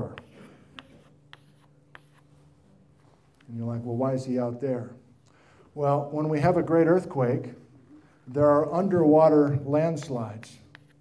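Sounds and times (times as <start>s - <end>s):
chalk tapping on chalkboard: 0.0s - 2.4s, 9.4s - 11.0s.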